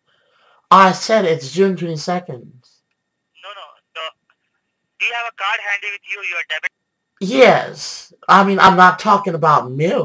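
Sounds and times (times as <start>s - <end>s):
voice over a telephone: 3.4s - 4.2s, 5.0s - 6.7s.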